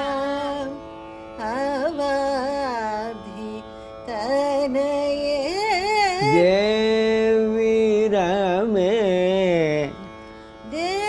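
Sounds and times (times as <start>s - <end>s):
man singing with ornaments: 5.2s - 11.0s.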